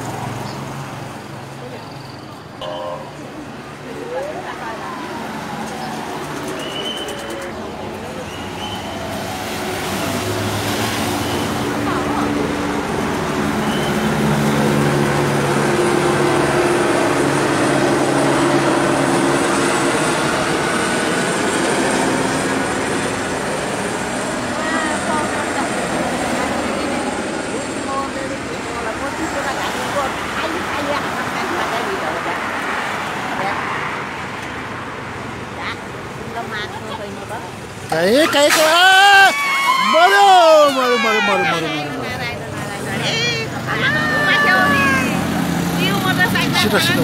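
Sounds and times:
cars driving past: 0.0 - 27.1, 28.4 - 38.7, 39.6 - 47.0
onlookers' voices: 1.1 - 47.0.

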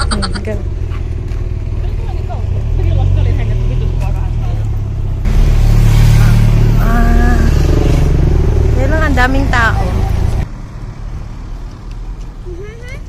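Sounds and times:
voices: 0.0 - 0.8, 8.7 - 10.4
traffic rumble: 0.0 - 13.0.

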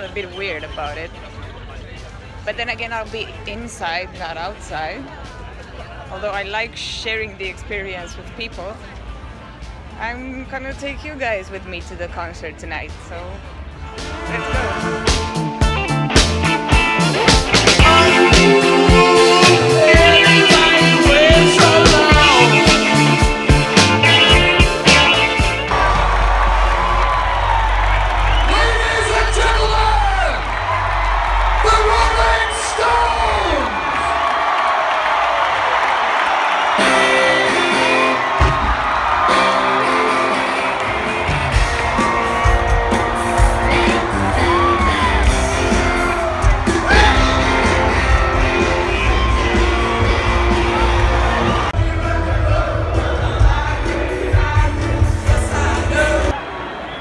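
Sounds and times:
rock band playing live: 14.0 - 26.1, 36.8 - 38.5, 39.2 - 56.3
person singing: 17.3 - 23.6
crowd cheering and whooping: 24.1 - 57.0.

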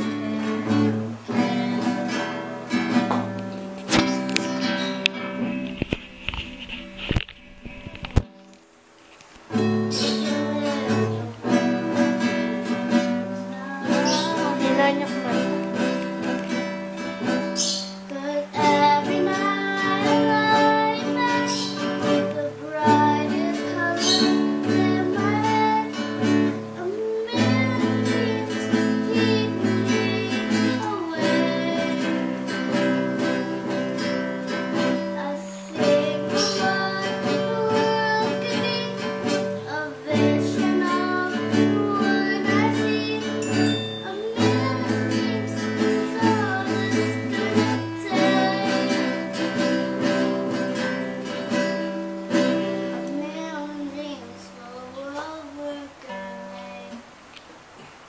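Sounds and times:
girl singing: 0.0 - 5.6, 9.5 - 57.2
classical guitar strumming chords: 0.0 - 58.0.

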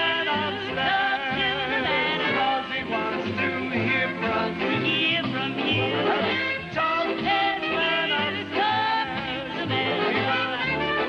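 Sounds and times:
big-band swing music with brass: 0.0 - 11.0
person singing with vibrato: 0.0 - 11.0.

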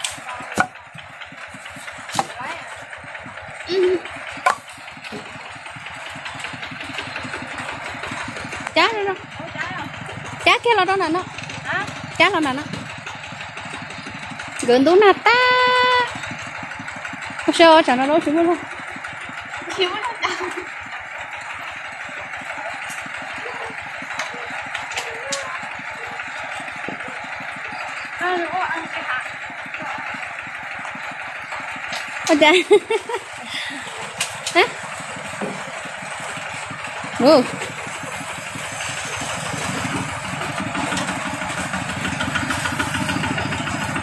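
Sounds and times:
small motorcycle engine idling: 0.0 - 44.0.

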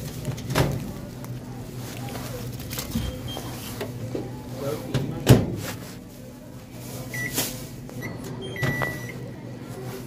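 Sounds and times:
microwave keypad beeping: 8.0 - 9.3.

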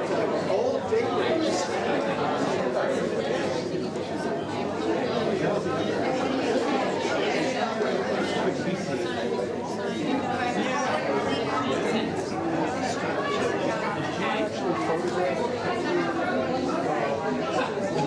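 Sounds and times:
babble of overlapping voices: 0.0 - 18.0.

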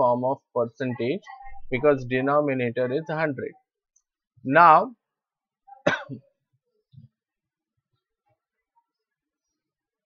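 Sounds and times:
man coughing: 5.9 - 6.2.

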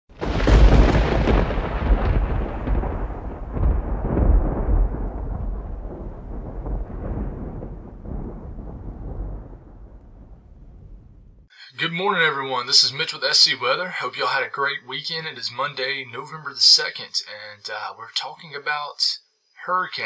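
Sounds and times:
thunder clap and rumble: 0.1 - 11.5.

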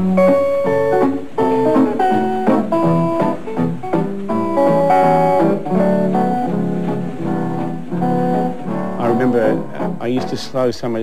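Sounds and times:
electric guitar melody: 0.0 - 11.0.

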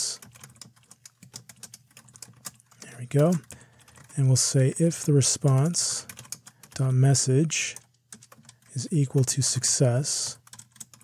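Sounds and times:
typing on computer keyboard: 0.0 - 4.2, 5.0 - 6.9, 7.7 - 9.3, 10.3 - 11.0.

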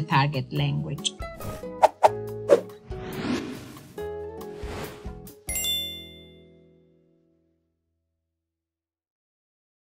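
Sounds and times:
ringing chime chord: 5.5 - 6.8.

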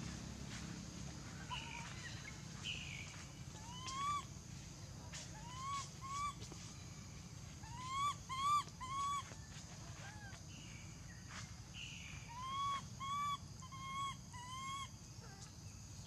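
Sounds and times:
infant monkey coo calls: 1.2 - 4.4, 5.4 - 6.6, 7.5 - 10.4, 12.1 - 15.6.

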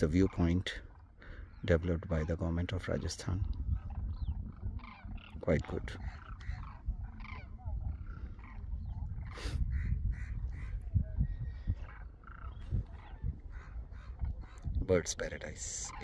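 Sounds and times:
flock of cranes calling: 0.0 - 14.7, 15.6 - 16.0.

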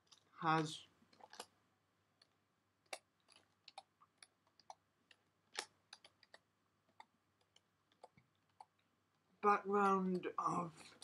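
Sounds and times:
faint keyboard typing: 2.2 - 8.9.

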